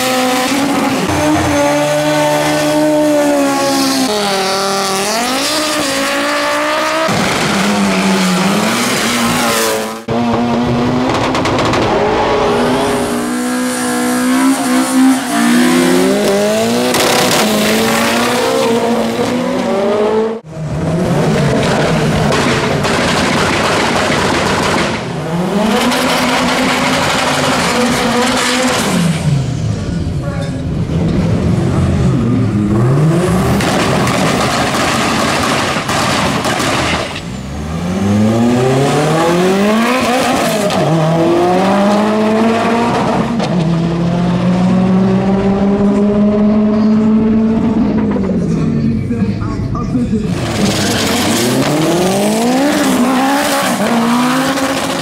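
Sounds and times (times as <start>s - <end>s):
racing car engines revving: 0.0s - 55.0s.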